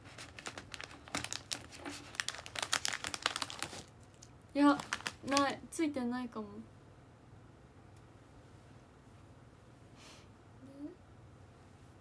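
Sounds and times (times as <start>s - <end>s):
plastic packaging crinkling: 0.0s - 5.6s.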